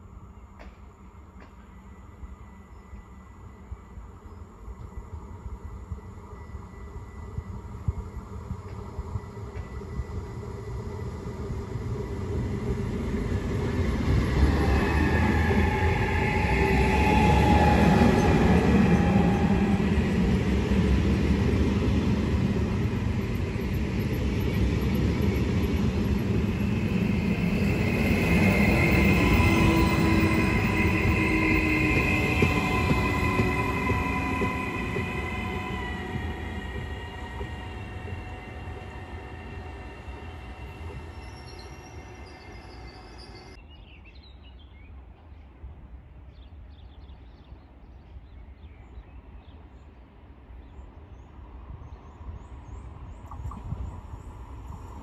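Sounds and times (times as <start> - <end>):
train rumbling on rails: 0.0 - 43.6, 48.8 - 55.0
high whining tones: 26.2 - 43.6
train motor whine: 26.4 - 43.5.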